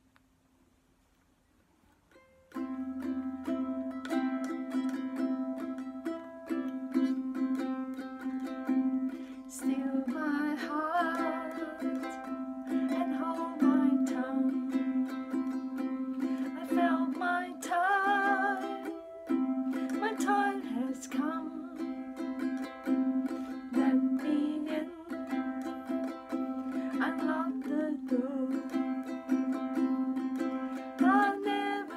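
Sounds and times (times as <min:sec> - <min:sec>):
ukulele strumming: 0:02.0 - 0:31.9.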